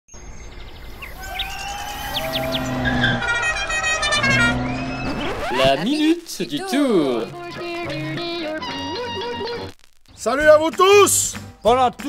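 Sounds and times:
birds chirping: 0:00.1 - 0:09.7
car engine driving up: 0:00.4 - 0:06.2
music: 0:06.7 - 0:12.0.

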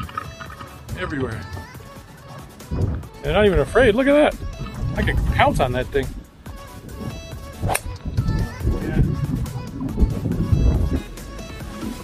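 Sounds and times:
background music: 0:00.0 - 0:12.0
golf club striking ball: 0:07.0 - 0:08.4.

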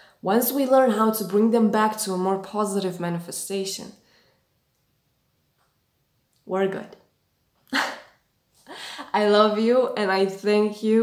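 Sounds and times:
woman speaking: 0:00.0 - 0:04.0, 0:06.4 - 0:07.0, 0:08.7 - 0:11.0
woman laughing: 0:07.7 - 0:09.2.

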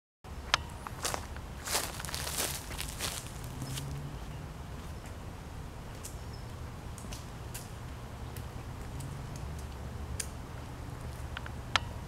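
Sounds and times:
steady low rumble: 0:00.3 - 0:12.0.

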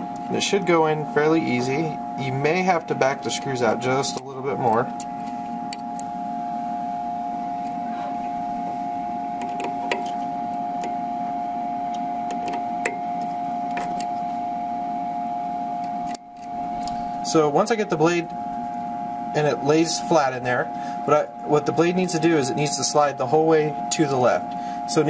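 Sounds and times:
steady machine hum: 0:00.0 - 0:25.0.

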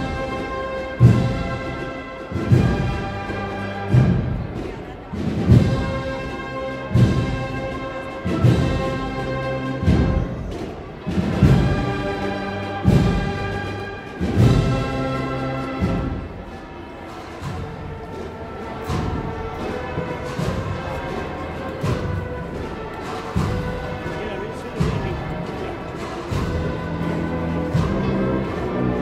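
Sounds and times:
heavy drum beat: 0:00.0 - 0:28.8
brass band playing a march: 0:00.0 - 0:29.0.

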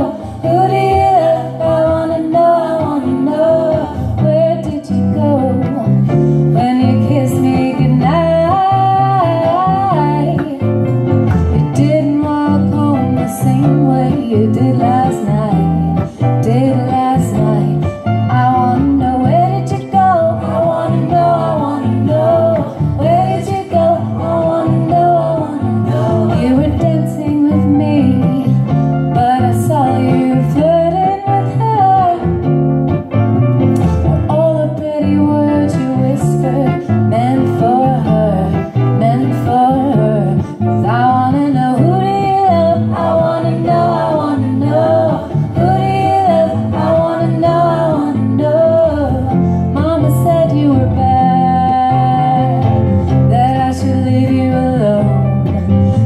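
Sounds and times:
woman singing into a microphone: 0:00.0 - 0:32.6, 0:33.8 - 0:56.0
plucked acoustic guitar: 0:00.0 - 0:56.0.

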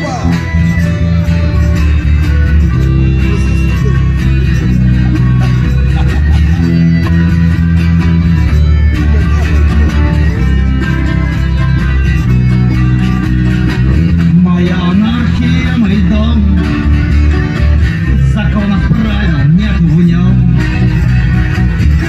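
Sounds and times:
accordion: 0:00.0 - 0:22.0
bass guitar: 0:00.0 - 0:22.0
strummed acoustic guitar: 0:00.0 - 0:22.0.

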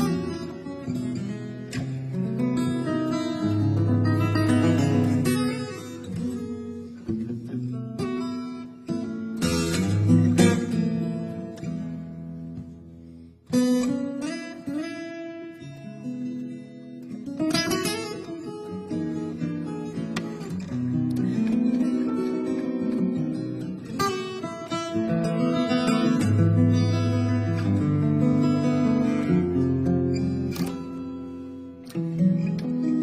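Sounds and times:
fingerstyle acoustic guitar: 0:00.0 - 0:33.0
strummed guitar chords: 0:00.0 - 0:33.0.

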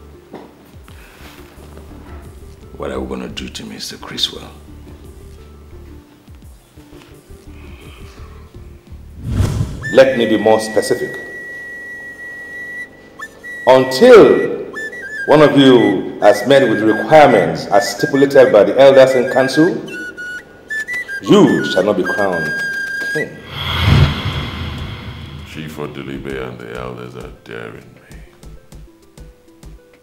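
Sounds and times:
low rumbling swell with hiss: 0:23.3 - 0:26.4.

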